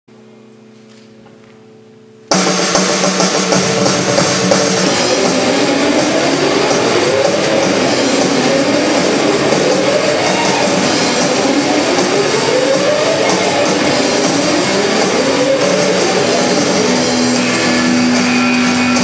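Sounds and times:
distorted guitar noise: 0.1s - 19.0s.

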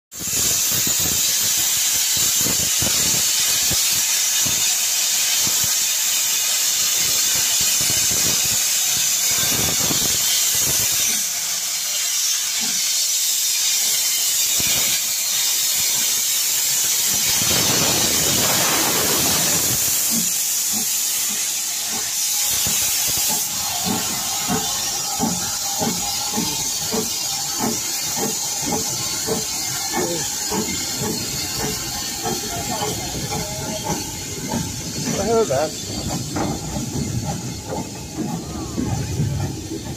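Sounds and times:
locomotive steam hissing: 0.1s - 39.9s
steam locomotive chuffing: 0.1s - 39.9s.

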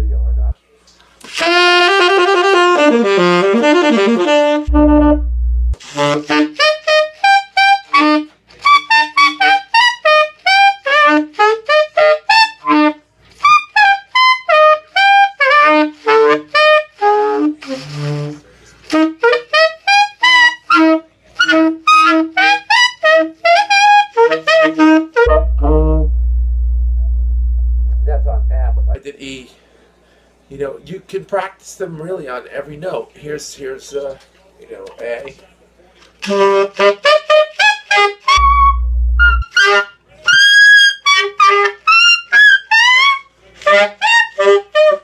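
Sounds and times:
loud steady low hum: 0.0s - 0.5s, 4.7s - 5.8s, 25.3s - 29.0s, 38.4s - 39.4s
tenor saxophone playing: 1.4s - 29.0s, 36.2s - 39.9s, 41.0s - 45.0s.

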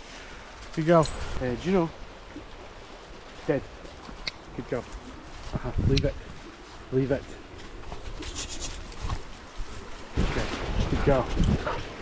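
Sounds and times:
wind buffeting microphone: 8.8s - 12.0s.

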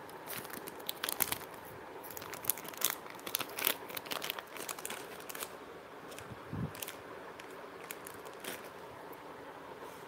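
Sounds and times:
plastic pouches crinkling: 0.1s - 8.8s.

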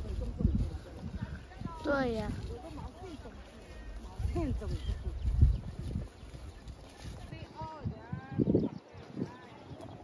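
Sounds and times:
plant stalks rustling: 0.0s - 7.9s.

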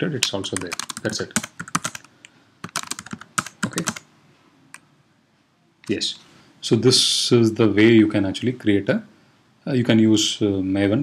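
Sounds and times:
computer keyboard typing: 0.2s - 4.1s.

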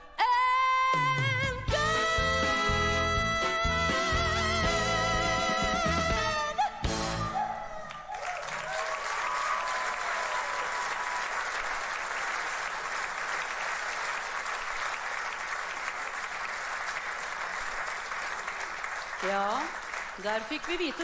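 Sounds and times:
audience applauding: 7.6s - 21.0s.

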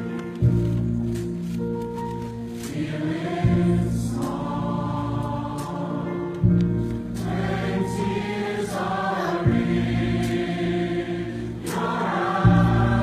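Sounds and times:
mixed choir singing sustained chords: 2.6s - 13.0s.

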